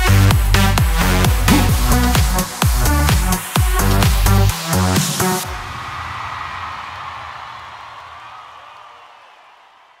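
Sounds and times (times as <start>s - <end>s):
reverberant electronic music tail: 0.6s - 4.7s.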